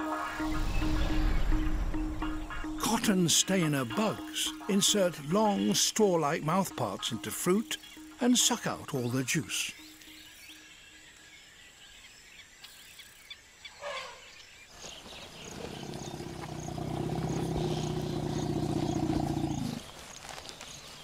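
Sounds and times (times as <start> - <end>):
elephant rumbling: 14.8 - 19.9.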